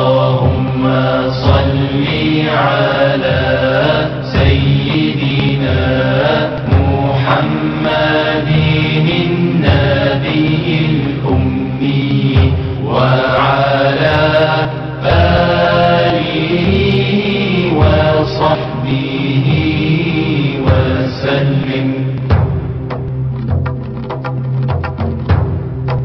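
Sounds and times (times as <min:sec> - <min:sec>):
devotional chant singing: 0:00.0 - 0:22.9
low steady drone: 0:00.0 - 0:26.0.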